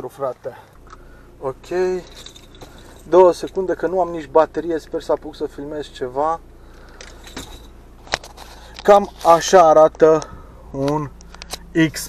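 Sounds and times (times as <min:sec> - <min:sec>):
low hum in car cabin: 0:00.0 - 0:12.0
man speaking: 0:01.4 - 0:02.1, 0:03.1 - 0:06.4, 0:08.9 - 0:12.0.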